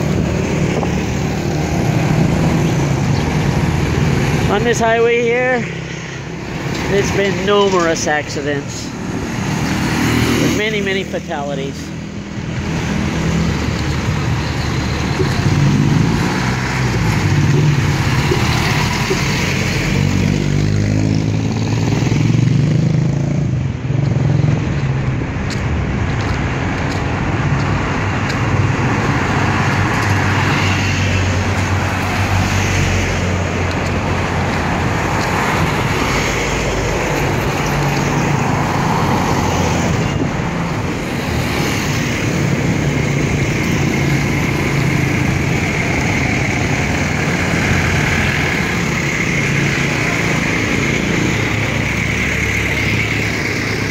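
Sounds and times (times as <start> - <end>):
steady road noise: 0.0 - 53.9
vehicles driving past: 0.0 - 53.9.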